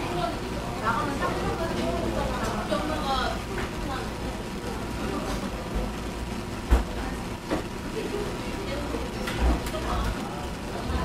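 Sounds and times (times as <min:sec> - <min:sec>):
low steady shop hum: 0:00.0 - 0:11.0.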